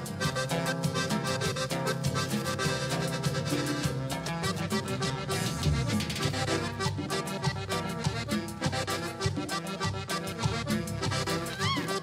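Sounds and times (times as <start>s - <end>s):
band playing cumbia: 0.0s - 12.0s
button accordion melody: 0.0s - 12.0s.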